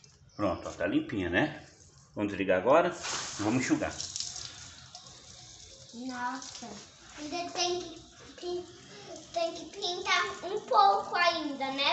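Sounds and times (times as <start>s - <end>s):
water spraying from hose nozzle: 3.0s - 11.9s.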